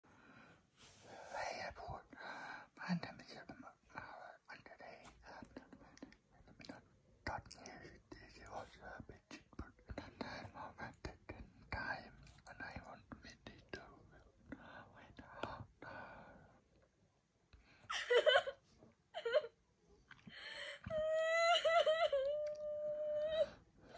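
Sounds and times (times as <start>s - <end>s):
faint whispering voice: 1.0s - 16.6s.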